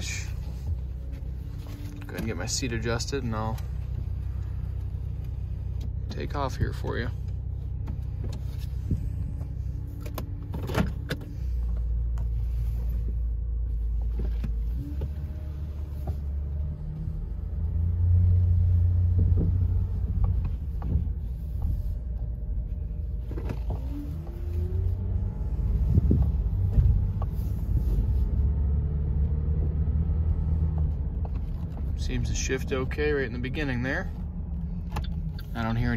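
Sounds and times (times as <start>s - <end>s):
car engine hum accelerating: 0.0s - 35.9s.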